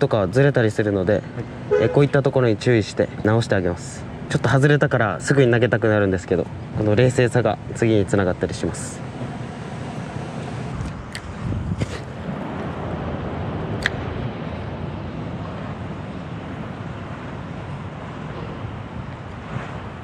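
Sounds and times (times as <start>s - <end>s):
wind rumble on microphone: 9.2s - 20.0s
sharp click: 13.8s - 14.0s.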